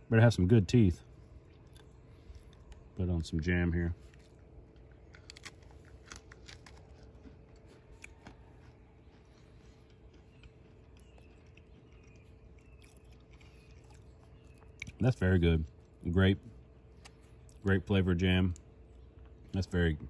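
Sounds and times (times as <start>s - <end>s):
crunching and chewing biscuit: 0.4s - 19.9s.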